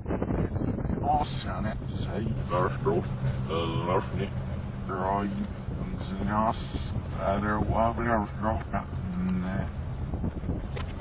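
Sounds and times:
low rumble: 0.0s - 11.0s
man's speech played backwards: 1.0s - 4.3s, 4.9s - 9.7s.

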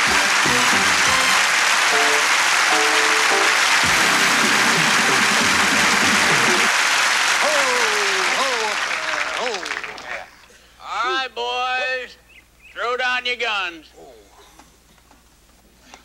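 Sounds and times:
band play-off music: 0.0s - 6.7s
audience applauding: 0.0s - 10.5s.

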